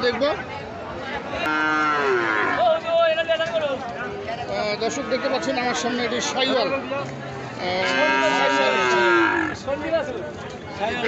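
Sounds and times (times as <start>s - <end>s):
bull mooing: 1.5s - 2.7s, 7.6s - 9.6s.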